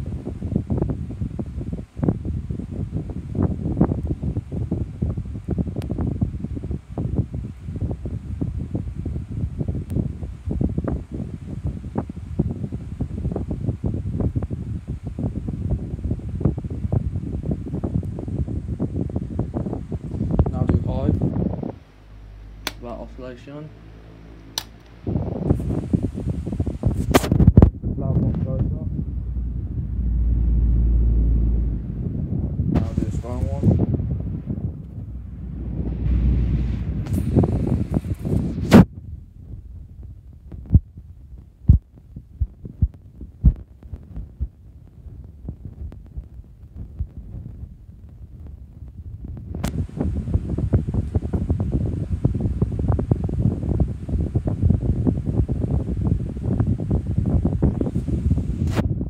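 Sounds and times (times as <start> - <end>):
fan airflow buffeting microphone: 0.0 - 59.0
sharp clicks: 24.4 - 24.9.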